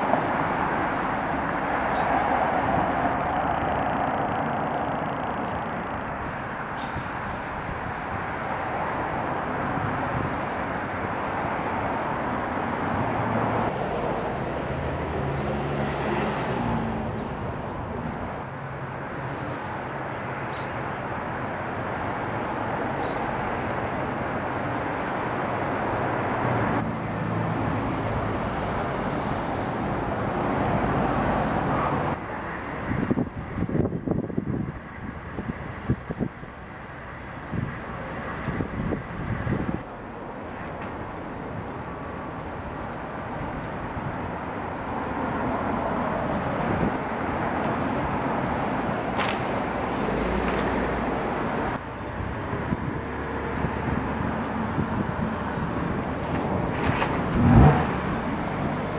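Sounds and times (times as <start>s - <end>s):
cars passing on road: 0.0s - 58.9s.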